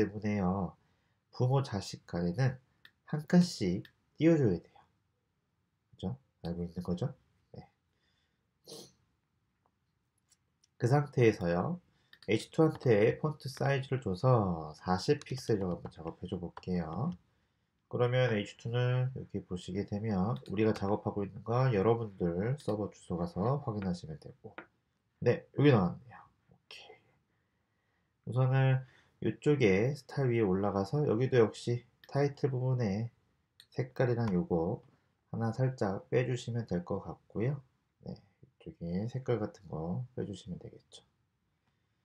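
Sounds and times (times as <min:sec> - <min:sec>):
faint breath: 0:00.8 - 0:01.2, 0:07.9 - 0:09.0, 0:28.8 - 0:29.2
soft breath close to microphone: 0:00.8 - 0:01.3.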